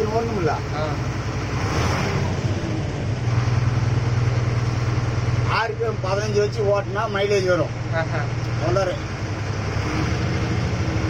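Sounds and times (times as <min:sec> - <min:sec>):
diesel bus engine rumbling: 0:00.0 - 0:11.0.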